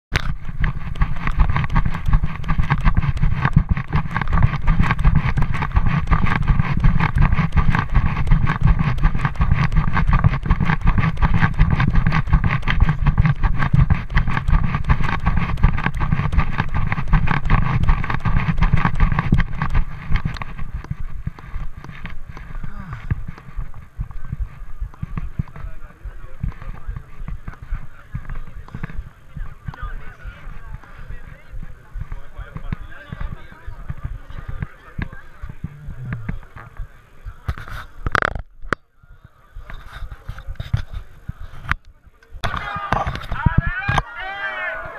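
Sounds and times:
camera handling rumble: 0:00.1 - 0:38.8, 0:39.5 - 0:44.2
crowd chatter: 0:10.6 - 0:44.9.

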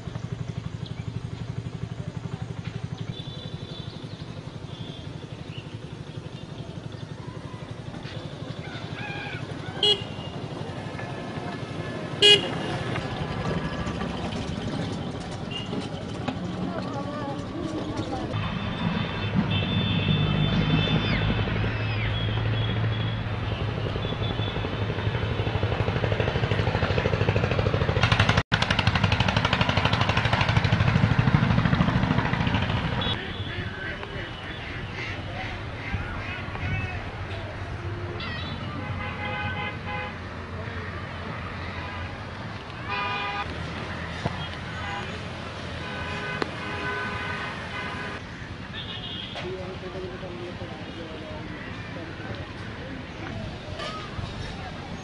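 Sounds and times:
engine chugging: 0:00.0 - 0:39.1
road traffic: 0:00.0 - 0:55.0.

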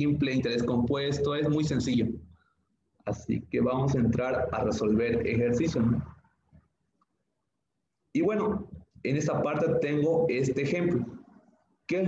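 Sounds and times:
man's voice: 0:03.1 - 0:06.1, 0:08.2 - 0:11.2.

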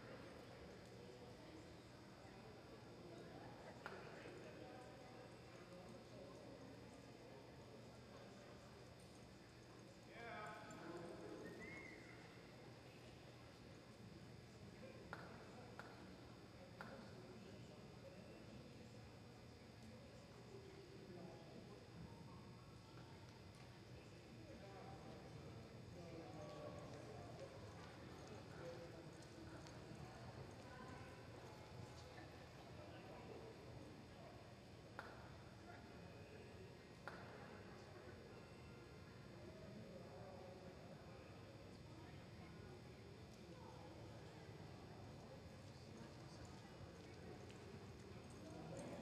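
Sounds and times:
faint voices: 0:00.0 - 0:49.0.

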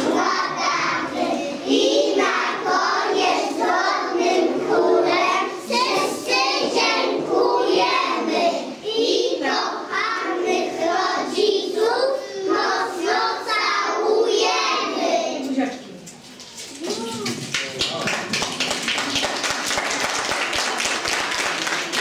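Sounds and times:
young children singing: 0:00.0 - 0:15.5.

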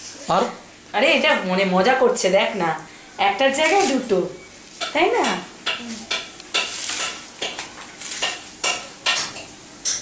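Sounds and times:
tableware clattering: 0:04.8 - 0:10.0.

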